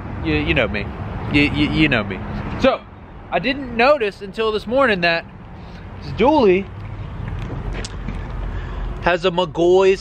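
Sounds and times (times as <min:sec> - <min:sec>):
camera handling rumble: 0:06.7 - 0:08.5.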